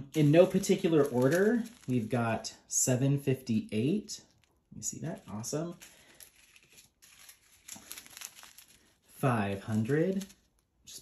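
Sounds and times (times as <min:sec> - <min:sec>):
plastic bags crinkling: 0:00.0 - 0:02.6, 0:04.1 - 0:11.0.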